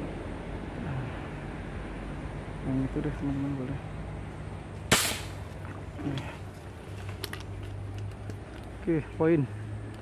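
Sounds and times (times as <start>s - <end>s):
air rifle shot: 4.9s - 5.4s.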